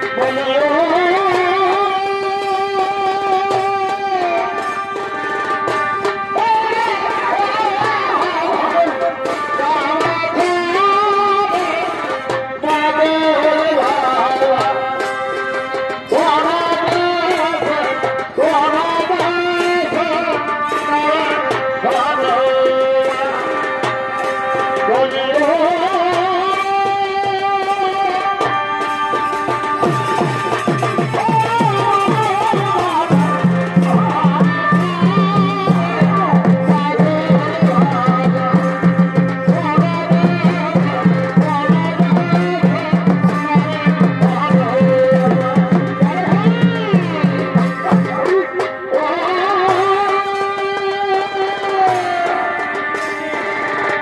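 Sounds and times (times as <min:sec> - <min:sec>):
drums: 0:00.0 - 0:54.0
reed pipe melody: 0:00.0 - 0:54.0.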